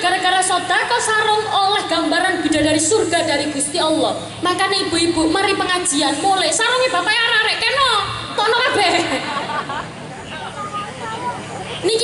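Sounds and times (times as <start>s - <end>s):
murmur of audience chatter: 2.7s - 12.0s
faint voices: 9.8s - 12.0s.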